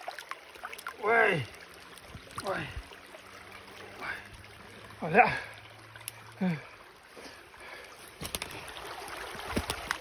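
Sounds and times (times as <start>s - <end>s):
small stream rushing: 0.0s - 10.0s
dry twigs clicking and rustling: 8.2s - 8.7s.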